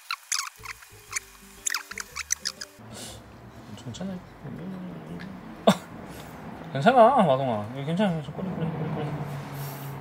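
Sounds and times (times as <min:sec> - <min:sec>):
soft background music: 0:00.4 - 0:09.4.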